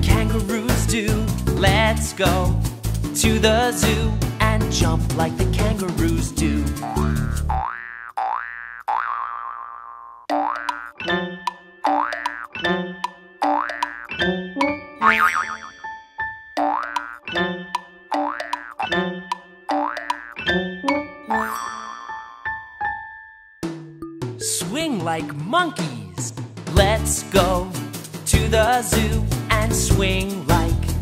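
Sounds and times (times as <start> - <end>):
bouncy children's song: 0.0 - 7.4, 23.6 - 31.0
cartoon boing sound effects: 6.8 - 11.2, 11.8 - 12.7, 13.4 - 15.8, 16.6 - 17.4, 18.1 - 19.0, 19.7 - 22.2.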